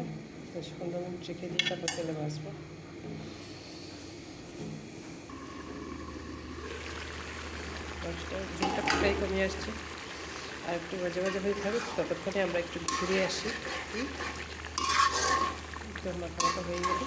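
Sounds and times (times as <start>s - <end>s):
steady low hum: 0.0s - 17.0s
metal pan clinking: 12.8s - 13.4s, 14.8s - 15.6s, 16.4s - 17.0s.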